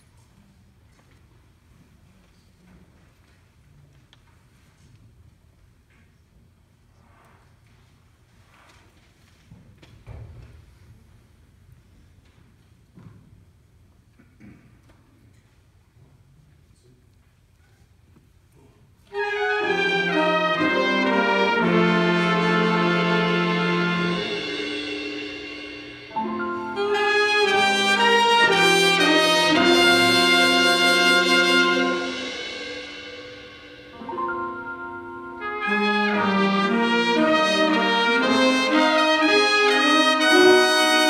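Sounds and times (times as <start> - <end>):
jazz big band brass: 19.1 - 41.0.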